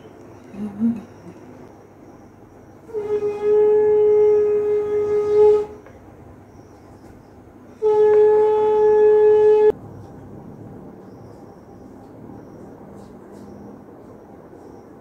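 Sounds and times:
conch shell blasts: 2.9 - 5.8, 7.8 - 9.7.

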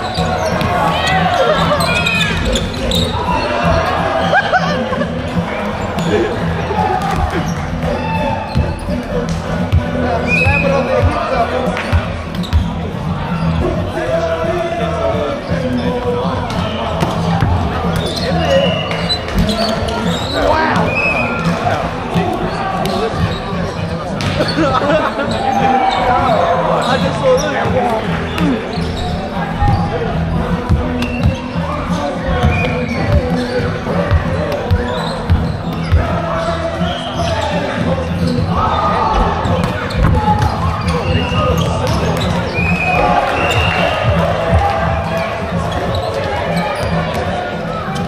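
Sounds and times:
shouts and chatter of people: 0.0 - 48.0.

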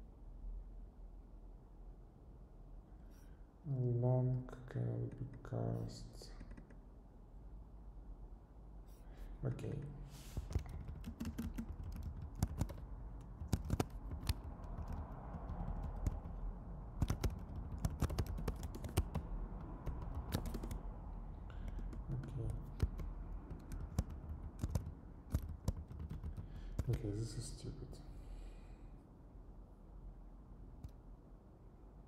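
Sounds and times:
typing on computer keyboard: 6.3 - 6.8, 10.4 - 20.8, 21.5 - 27.0.

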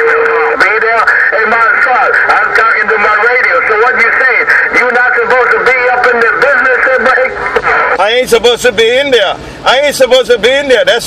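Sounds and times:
garbled voices over radio: 0.0 - 8.6.

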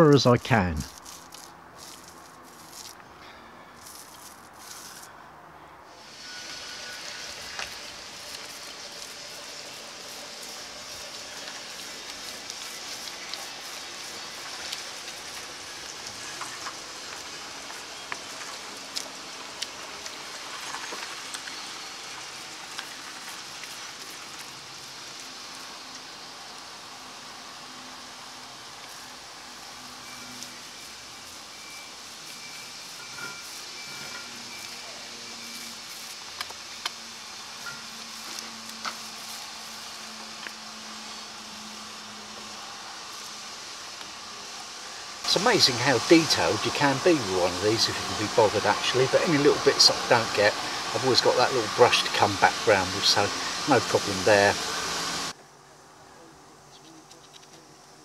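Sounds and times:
paint roller on sticky coating: 0.8 - 3.0, 3.8 - 5.1, 6.0 - 25.6, 29.9 - 36.8, 37.5 - 40.6, 45.3 - 55.2.

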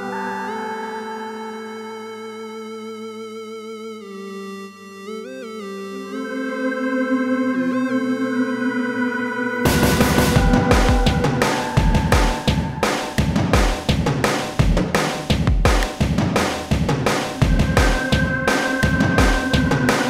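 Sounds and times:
organ-like synth chords: 0.0 - 20.0
drum beat: 9.7 - 20.0.

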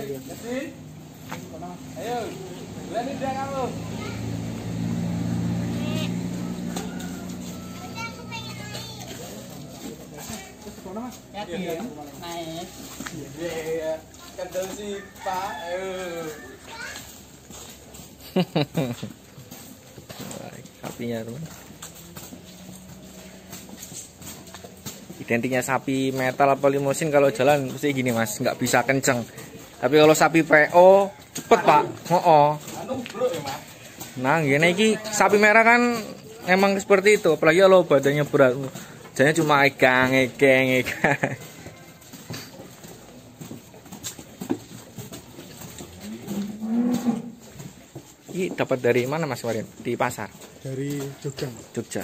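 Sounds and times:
cattle hooves clopping on concrete: 0.0 - 52.0
cow mooing: 45.9 - 47.6.

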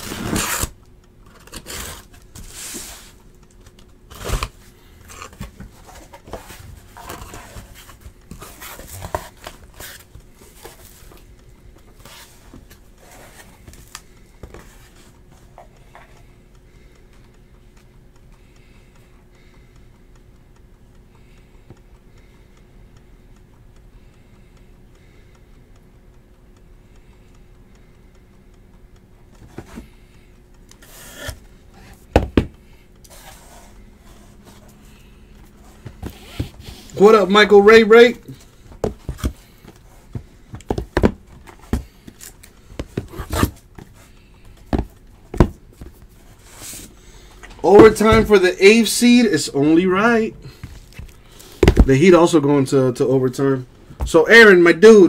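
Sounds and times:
cardboard packaging rustling and scraping: 0.0 - 0.8, 1.4 - 3.2, 4.1 - 11.2, 35.6 - 37.2, 38.4 - 44.1
faint steady hum: 0.0 - 55.0.

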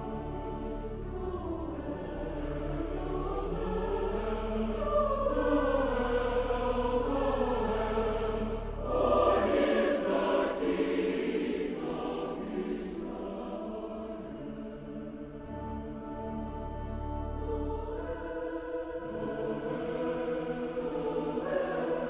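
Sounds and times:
choir singing held notes: 0.0 - 22.0.

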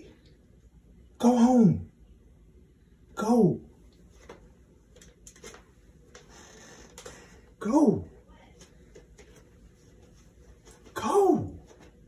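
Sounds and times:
soft rustle of person moving: 3.8 - 7.6, 8.2 - 12.0.

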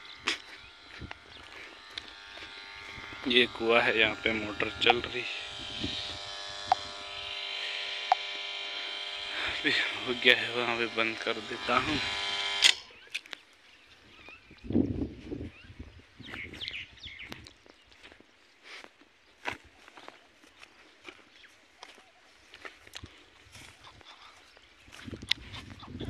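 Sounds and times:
electric pump motor humming: 0.0 - 13.0
footsteps on grass and gravel: 0.0 - 26.0.

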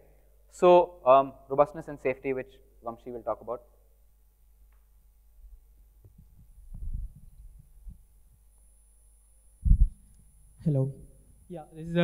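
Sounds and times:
faint steady hum: 0.0 - 12.0
microphone handling thumps: 5.4 - 8.4, 9.6 - 10.0.

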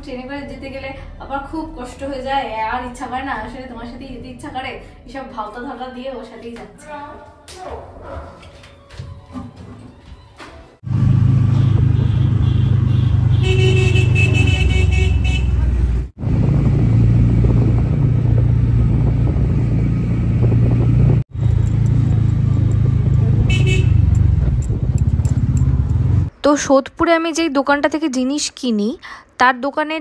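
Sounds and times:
street traffic: 10.2 - 29.4
motorbike rumble: 10.8 - 26.3
vehicle horn honking: 11.5 - 15.8, 23.5 - 24.2.

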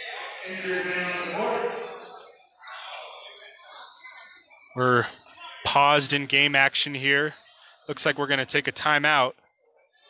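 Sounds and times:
indistinct voices echoing in gym: 0.0 - 10.0.

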